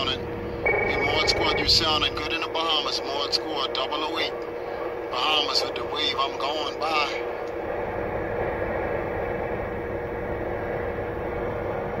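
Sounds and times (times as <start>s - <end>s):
radio static hiss: 0.0s - 8.5s
faint steady tone: 0.0s - 12.0s.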